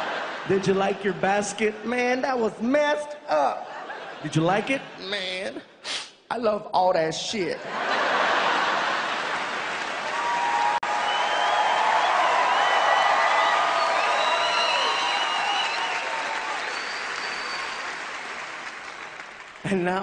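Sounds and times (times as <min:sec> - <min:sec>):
audience applauding: 0:08.5 - 0:20.0
cheers and whoops: 0:10.0 - 0:18.0.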